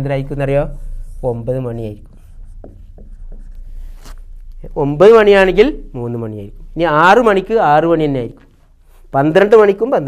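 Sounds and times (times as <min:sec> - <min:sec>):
marker pen on whiteboard: 0:00.0 - 0:09.9.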